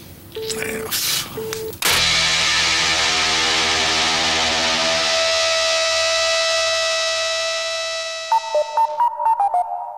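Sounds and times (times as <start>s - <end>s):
distorted rock chord ringing: 1.9s - 8.8s.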